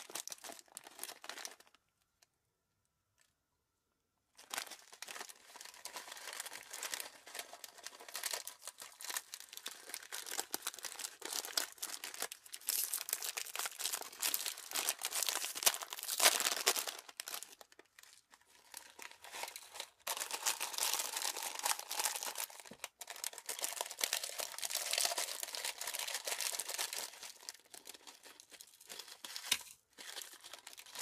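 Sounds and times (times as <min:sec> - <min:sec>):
plastic sachet crinkling and tearing: 0:00.0 - 0:01.8, 0:04.4 - 0:31.0.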